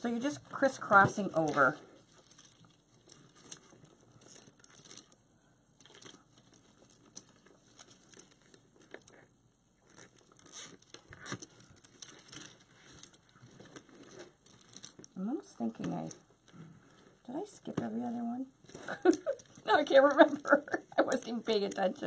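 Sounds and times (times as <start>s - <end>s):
plastic mesh rustling and crinkling: 0.0s - 5.2s, 5.8s - 22.0s.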